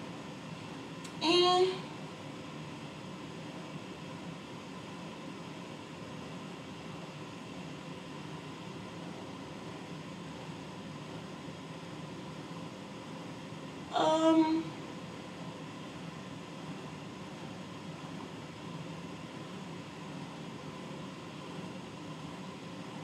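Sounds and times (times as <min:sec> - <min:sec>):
faint hum: 0:00.0 - 0:23.0
low background hiss: 0:00.0 - 0:23.0.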